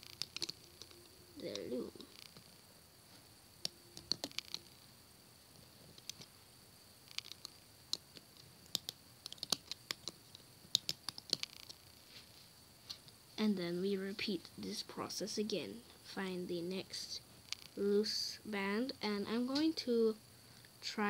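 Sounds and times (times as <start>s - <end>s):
rubber bands clicking on plastic pegs: 0.0s - 1.0s, 3.6s - 4.7s, 6.0s - 6.3s, 7.1s - 11.8s.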